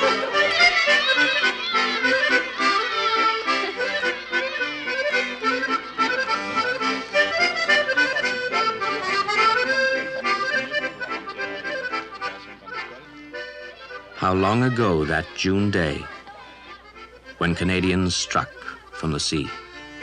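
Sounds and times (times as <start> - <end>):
accordion melody: 0.0 - 20.0.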